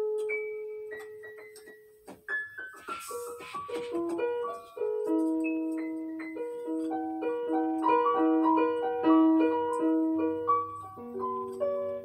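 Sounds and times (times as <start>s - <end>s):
digital piano notes: 0.0s - 12.0s.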